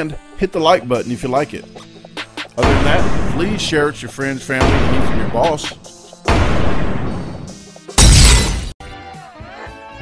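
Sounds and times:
music: 0.0 - 10.0
glass shattering crash: 8.0 - 8.8.

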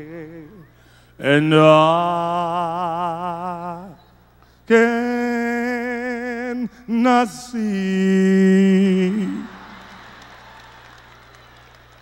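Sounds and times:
low steady hum: 0.0 - 12.0
faint audience applause: 8.9 - 12.0.

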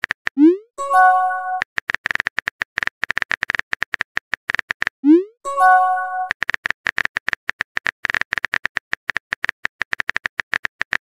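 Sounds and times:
electronic chime: 0.8 - 1.6, 5.5 - 6.3.

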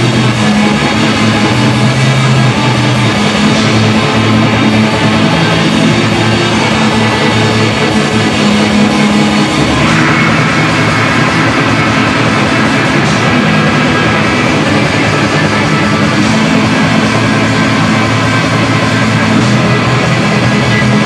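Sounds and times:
black metal band playing live: 0.0 - 21.0.

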